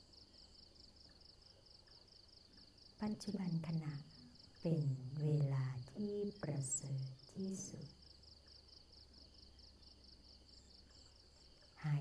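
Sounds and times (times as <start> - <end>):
crickets chirping: 0.0 - 12.0
woman's voice: 3.0 - 7.9, 11.8 - 12.0.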